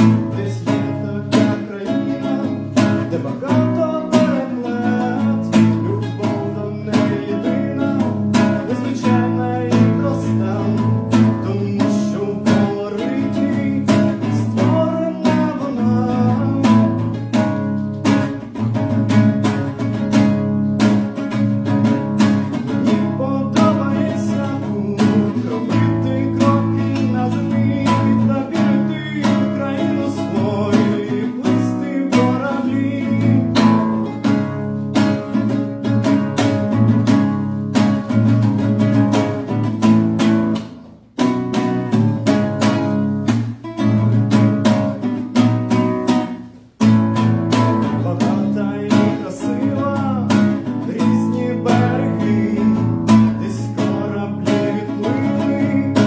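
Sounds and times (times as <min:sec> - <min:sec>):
acoustic guitar strummed chords: 0:00.0 - 0:56.0.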